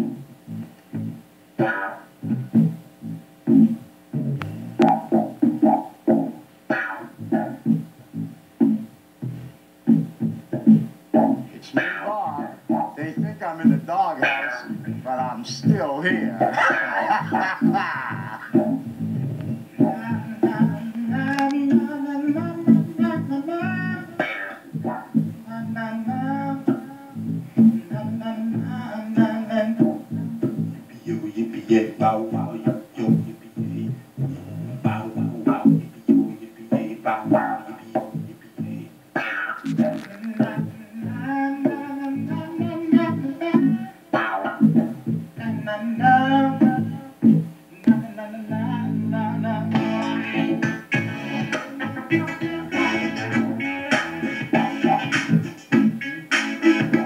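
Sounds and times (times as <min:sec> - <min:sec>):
low bass line: 0:00.0 - 0:01.2, 0:02.2 - 0:05.8, 0:07.1 - 0:11.5, 0:18.2 - 0:21.4, 0:24.8 - 0:28.9, 0:33.1 - 0:35.5, 0:48.5 - 0:55.0
electric guitar playing: 0:00.0 - 0:13.4, 0:48.6 - 0:57.0
electric guitar riff: 0:00.0 - 0:30.9, 0:37.1 - 0:47.6, 0:48.7 - 0:57.0.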